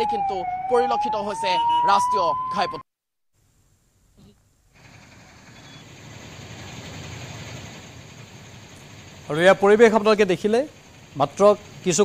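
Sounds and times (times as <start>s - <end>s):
traffic engines idling and crawling: 4.2s - 12.0s.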